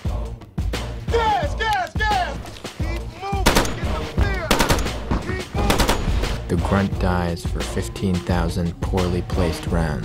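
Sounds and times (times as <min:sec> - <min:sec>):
music: 0:00.0 - 0:10.0
people shouting: 0:01.1 - 0:06.1
machine-gun fire: 0:03.4 - 0:06.4.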